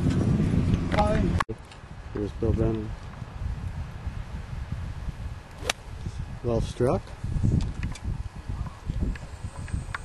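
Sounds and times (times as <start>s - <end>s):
golf club striking ball: 5.6s - 5.9s.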